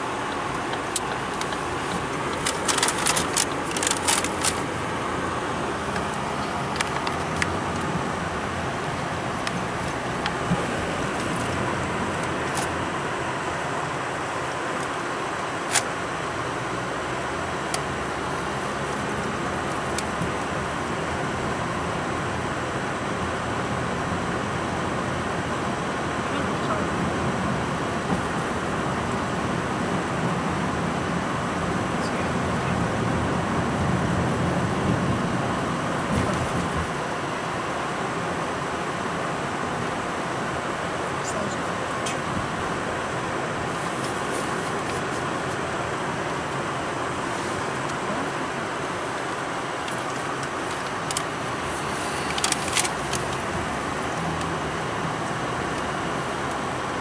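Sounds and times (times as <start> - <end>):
road and tyre noise in car: 0.0 - 57.0.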